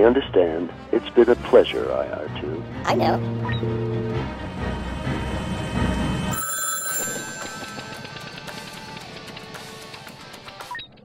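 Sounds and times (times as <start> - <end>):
low rumble: 3.2 - 6.4
telephone ringing: 6.3 - 9.7.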